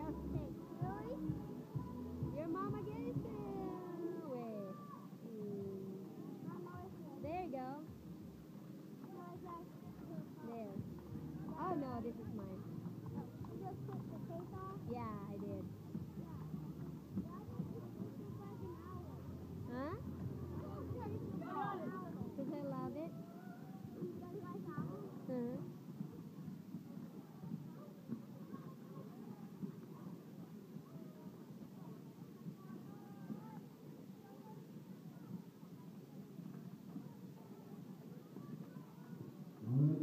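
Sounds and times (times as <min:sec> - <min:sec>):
people talking and calling out: 0:00.0 - 0:40.0.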